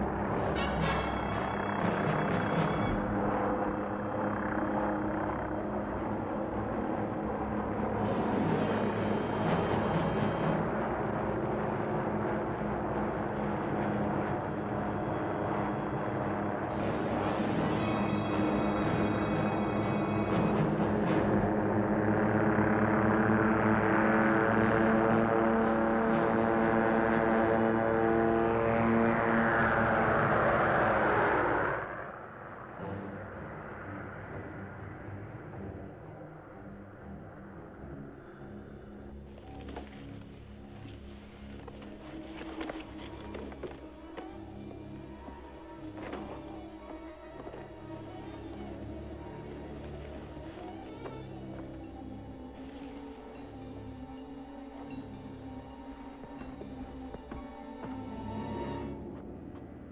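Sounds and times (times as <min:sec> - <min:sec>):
helicopters hovering: 0:00.0 - 0:59.9
orchestral music with timpani and brass: 0:00.4 - 0:03.2, 0:08.0 - 0:10.8
low rumble: 0:19.8 - 0:54.2.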